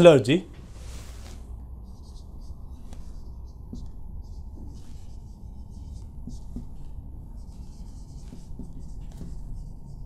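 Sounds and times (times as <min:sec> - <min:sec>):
low background hum: 0:00.0 - 0:10.0
marker pen scratching on paper: 0:00.8 - 0:10.0.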